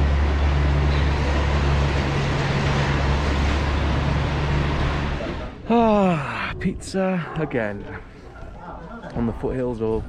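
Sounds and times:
cable car machinery humming: 0.0 - 6.0.

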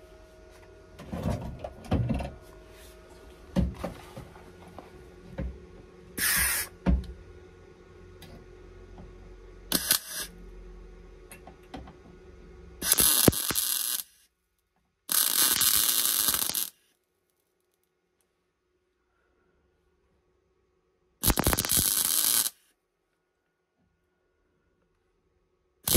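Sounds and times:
welding bursts: 6.2 - 6.7, 9.7 - 10.3, 12.8 - 14.2, 15.1 - 16.8, 21.2 - 22.6.

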